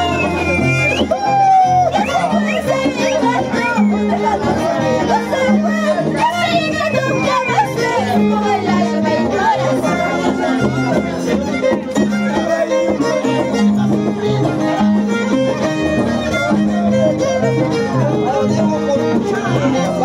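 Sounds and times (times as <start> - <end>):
violin melody: 0.0 - 20.0.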